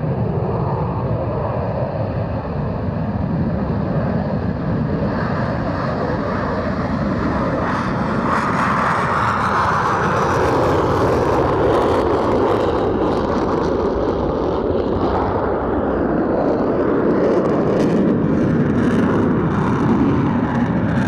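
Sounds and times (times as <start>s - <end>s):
loud jet engine roar: 0.0s - 21.0s.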